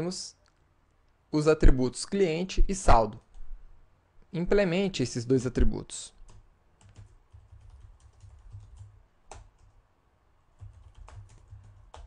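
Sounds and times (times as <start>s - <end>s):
faint keyboard typing: 6.2s - 9.8s, 10.5s - 12.0s.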